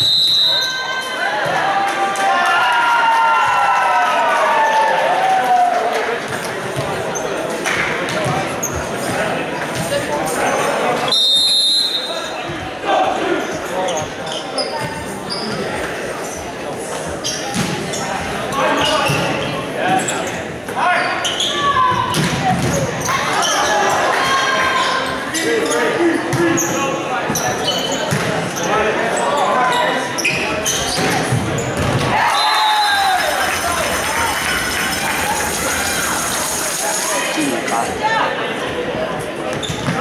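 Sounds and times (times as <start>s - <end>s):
people calling and shouting: 0.0s - 40.0s.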